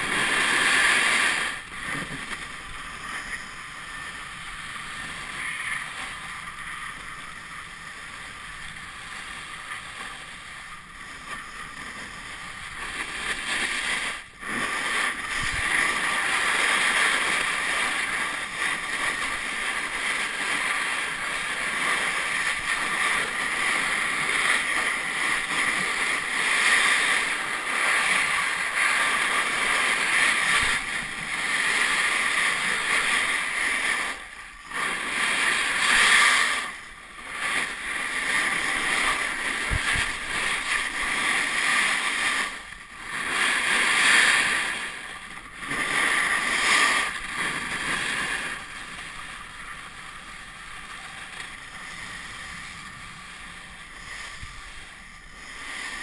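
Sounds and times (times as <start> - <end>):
skis hissing over snow: 0.0 - 56.0.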